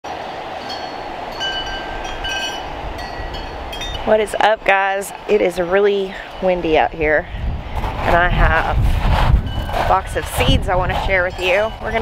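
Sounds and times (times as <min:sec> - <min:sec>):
wind buffeting microphone: 0:00.2 - 0:12.0.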